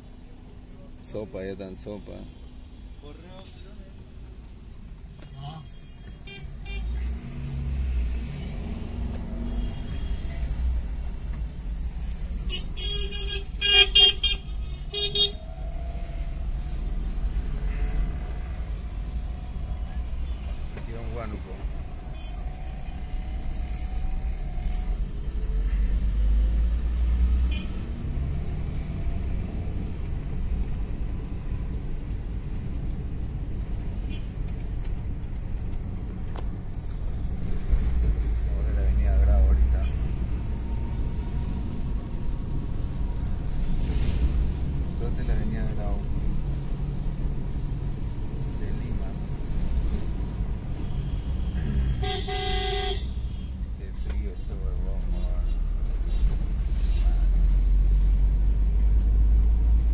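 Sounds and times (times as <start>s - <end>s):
car engine and tyres rumbling: 0.0s - 59.9s
car horn honking: 9.5s - 10.4s, 12.5s - 15.4s, 27.5s - 27.8s, 51.0s - 53.5s.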